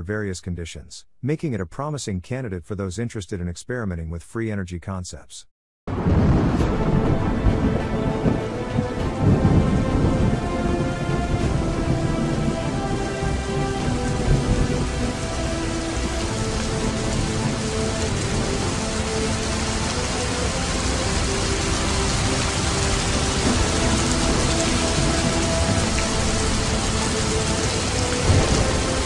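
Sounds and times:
low thunder rumbles: 0:05.9 - 0:29.0
rain-like hiss: 0:06.0 - 0:29.0.

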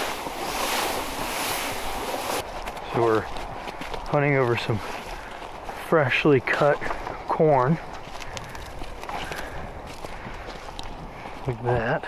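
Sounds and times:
footsteps crunching through corn stubble: 0:00.0 - 0:12.0.

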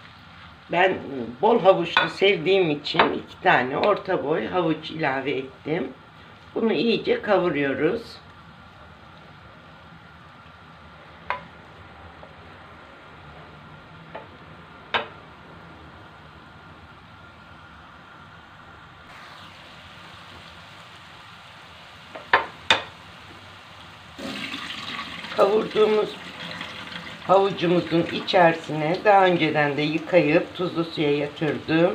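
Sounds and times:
carrots sizzling in a frying pan: 0:00.0 - 0:11.8, 0:19.1 - 0:31.9
wooden spatula knocking on pan: 0:22.1 - 0:22.9.

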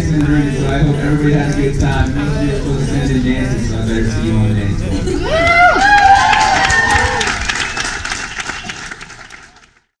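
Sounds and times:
crowd applauding: 0:05.3 - 0:10.0.

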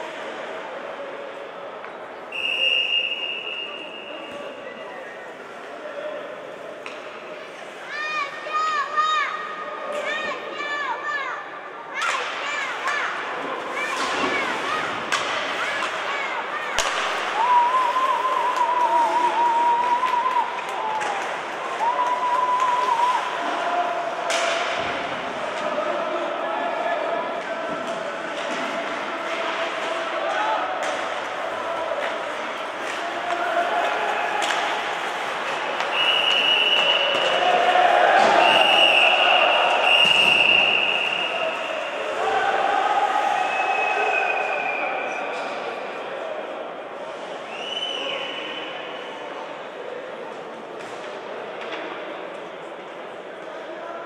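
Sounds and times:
referee's whistle blasts: 0:02.3 - 0:04.6
puck and sticks knocking boards: 0:16.7 - 0:17.4.

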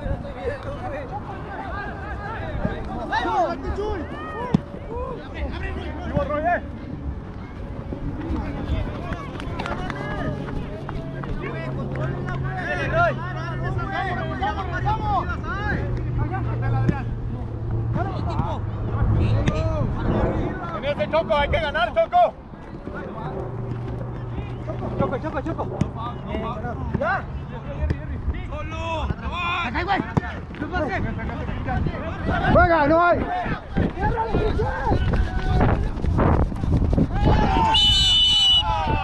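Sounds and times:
footballers shouting: 0:00.0 - 0:20.0, 0:20.6 - 0:36.1, 0:37.0 - 0:39.0.

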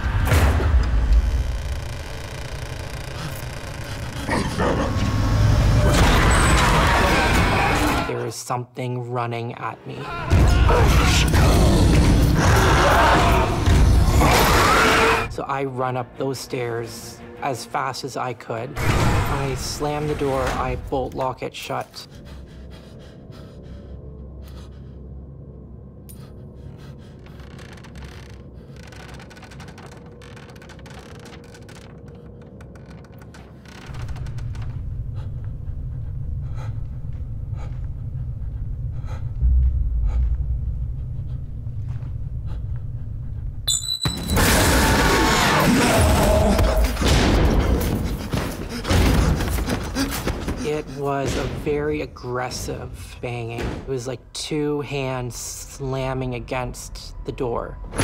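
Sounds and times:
person breathing heavily: 0:21.9 - 0:27.5, 0:34.8 - 0:43.6, 0:46.4 - 0:51.2.

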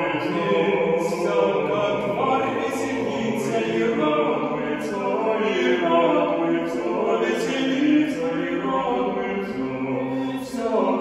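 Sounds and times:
mixed choir singing in harmony: 0:00.0 - 0:11.0.

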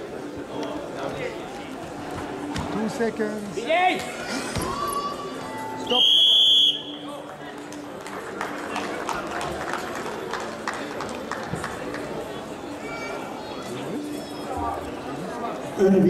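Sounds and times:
crowd noise: 0:00.0 - 0:16.0.

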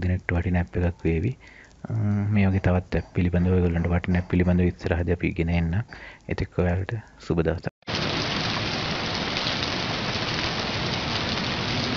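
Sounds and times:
rain hiss: 0:00.0 - 0:02.5, 0:07.9 - 0:11.9.

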